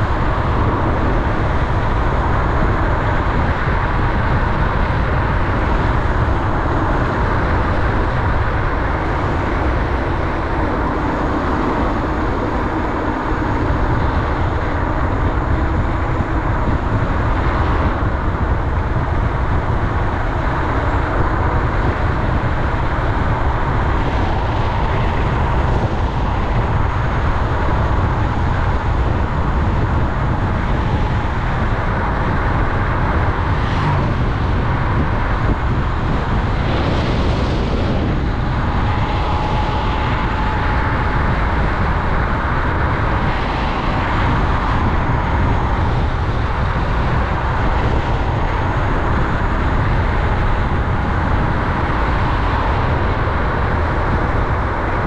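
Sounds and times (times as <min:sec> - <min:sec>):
faint steady whine: 0:00.0 - 0:55.0
wind rush on microphone: 0:00.0 - 0:55.0.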